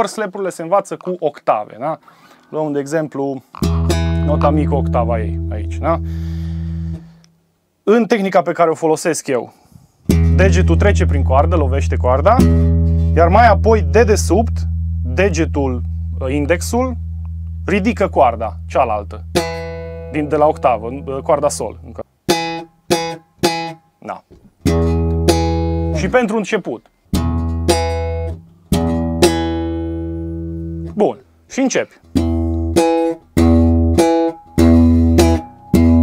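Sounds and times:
slap bass notes: 0:03.6 - 0:07.2, 0:10.1 - 0:23.8, 0:24.5 - 0:26.4, 0:27.1 - 0:31.0, 0:32.1 - 0:36.0
low electric bass note: 0:10.1 - 0:22.0, 0:25.2 - 0:26.2.

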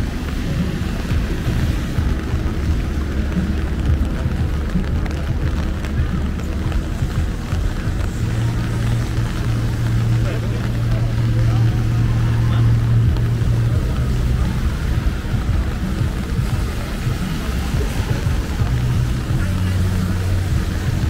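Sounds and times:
cars driving past on wet road: 0:00.0 - 0:21.0
low engine hum: 0:00.0 - 0:21.0.

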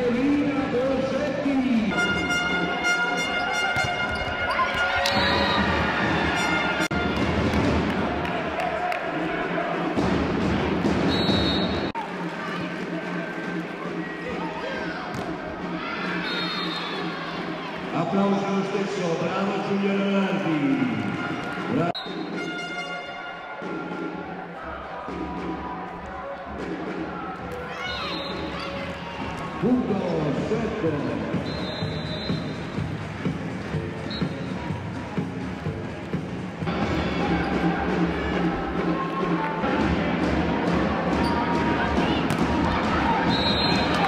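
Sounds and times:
arena music: 0:00.0 - 0:44.0.

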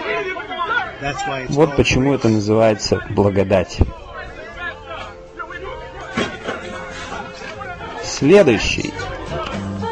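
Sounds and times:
people chattering: 0:00.0 - 0:09.9.

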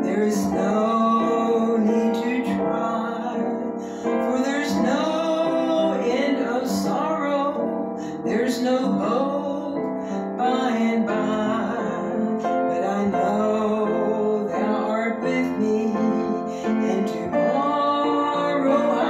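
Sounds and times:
upright piano playing a hymn: 0:00.0 - 0:19.0
woman singing: 0:00.0 - 0:19.0.

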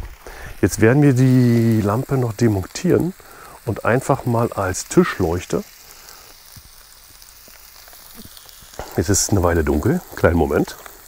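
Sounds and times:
food sizzling on grill: 0:00.0 - 0:11.0.

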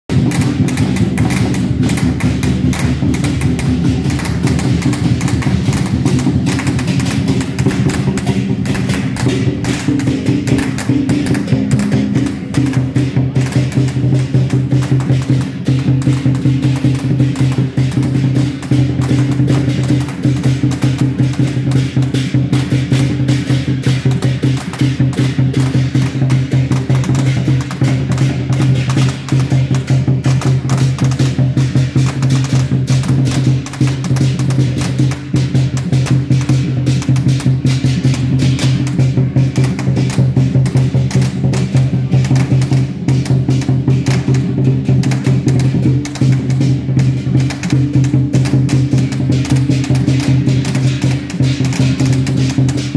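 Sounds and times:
fast drum and wood-block percussion: 0:00.0 - 0:52.9.

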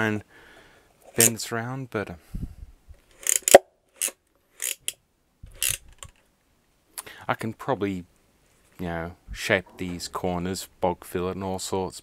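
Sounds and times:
plastic clicks and scrapes: 0:03.0 - 0:06.2.

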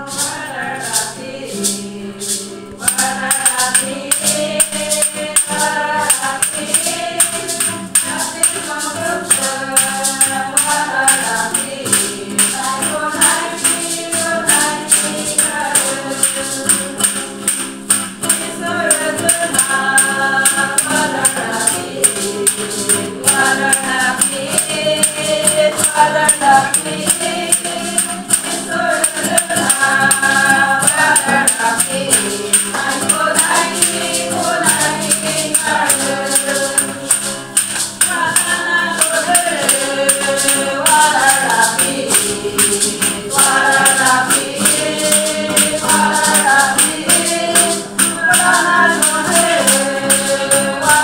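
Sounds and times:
acoustic guitar: 0:00.0 - 0:51.0
congregation singing a hymn: 0:00.0 - 0:51.0
hand percussion jingling: 0:00.0 - 0:51.0
shaker keeping a beat: 0:00.0 - 0:51.0.

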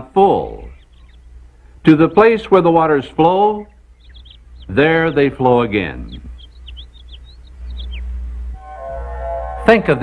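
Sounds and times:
low hum: 0:00.0 - 0:10.0
quick bird chirps: 0:00.6 - 0:01.4, 0:03.5 - 0:08.3
background music sustained chords: 0:07.6 - 0:10.0.

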